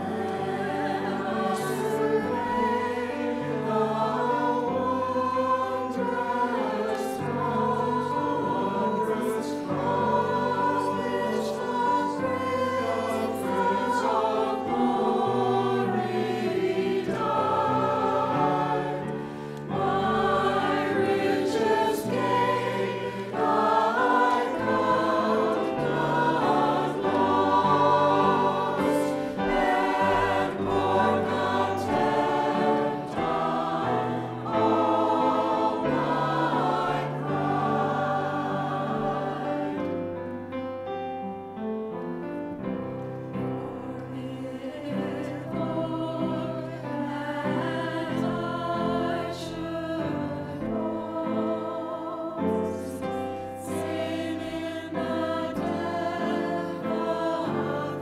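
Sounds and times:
mixed choir singing: 0:00.0 - 0:40.7, 0:42.9 - 0:58.0.

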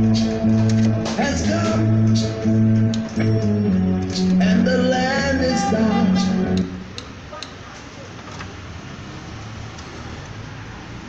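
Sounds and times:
cd changer mechanism whirring: 0:00.0 - 0:04.6.

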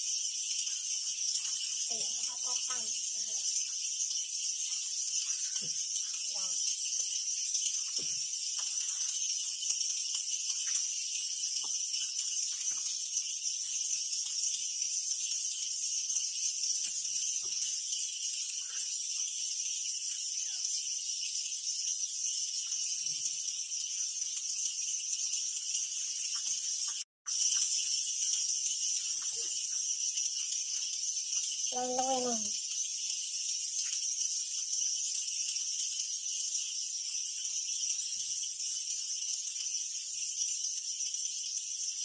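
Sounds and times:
faint small ticks: 0:00.0 - 0:42.0
high-pitched insect chorus buzzing: 0:00.0 - 0:42.0.

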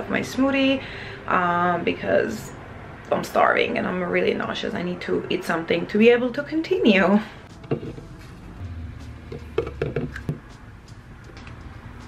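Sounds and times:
low hum: 0:07.5 - 0:12.0
plastic scoop knocking on tub: 0:09.3 - 0:10.4.

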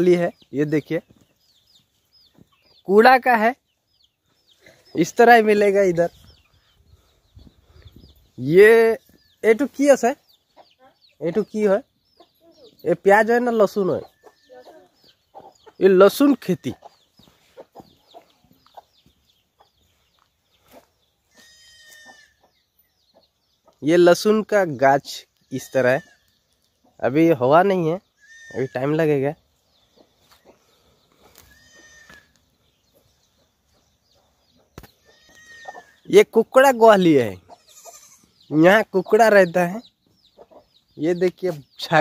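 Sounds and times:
chickens clucking softly: 0:13.8 - 0:23.9, 0:29.8 - 0:31.5, 0:39.5 - 0:41.6
faint goat bleating: 0:21.3 - 0:22.4, 0:28.2 - 0:29.0, 0:31.4 - 0:32.4, 0:35.0 - 0:36.0, 0:37.4 - 0:38.4.

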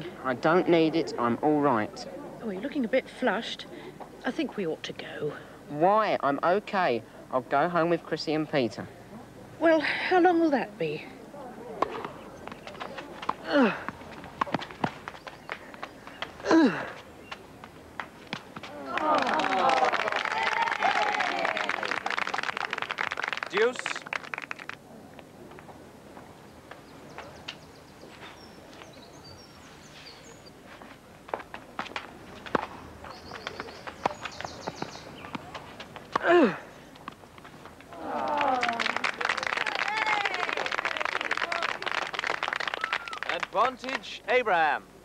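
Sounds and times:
footsteps scuffing on court: 0:11.8 - 0:18.7, 0:30.0 - 0:36.2.

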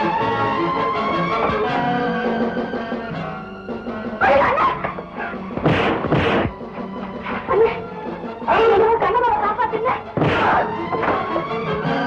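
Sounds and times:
old film score music: 0:00.0 - 0:12.0.

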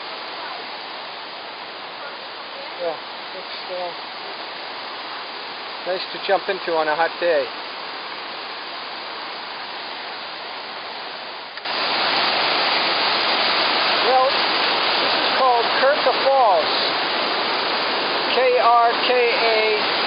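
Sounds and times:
water rushing over rocks: 0:00.0 - 0:20.0.

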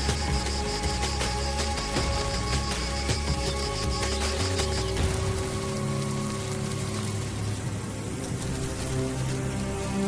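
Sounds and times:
background music with low notes: 0:00.0 - 0:10.0
steady hiss: 0:00.0 - 0:10.0.

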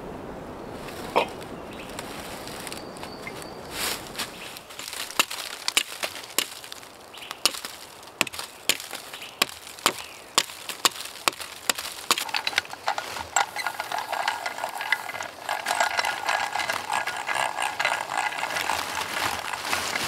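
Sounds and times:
hand drill boring into wood: 0:07.4 - 0:20.0.

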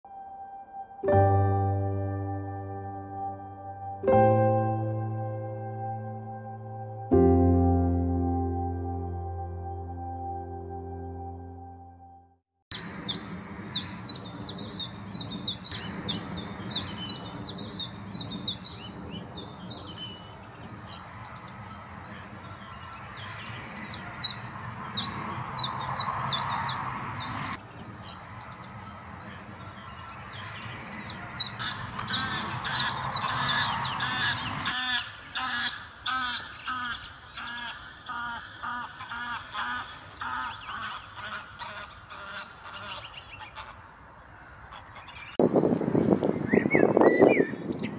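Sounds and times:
bird singing two-note song: 0:00.1 - 0:12.3
geese honking: 0:31.2 - 0:45.2.

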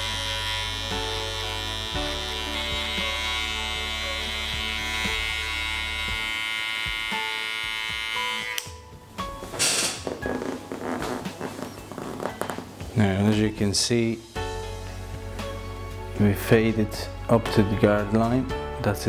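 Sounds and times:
electric hair clipper buzzing: 0:00.0 - 0:08.8
rustling: 0:09.4 - 0:12.9.

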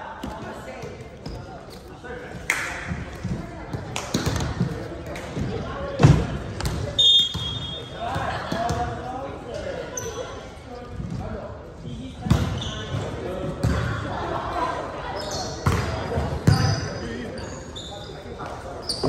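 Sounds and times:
sneakers squeaking on floor: 0:06.6 - 0:08.8, 0:11.8 - 0:13.9, 0:15.1 - 0:19.0.

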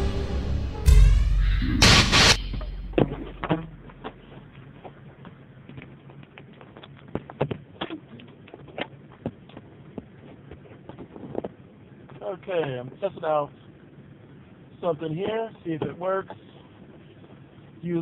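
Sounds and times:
music sting: 0:00.0 - 0:04.3.

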